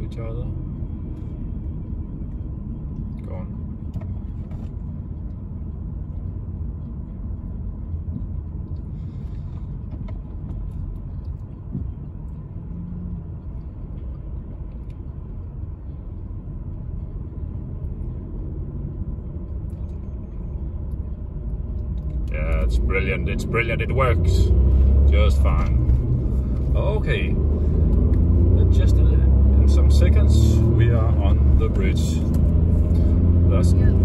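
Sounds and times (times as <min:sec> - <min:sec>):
car engine and tyre noise: 0:00.0 - 0:34.0.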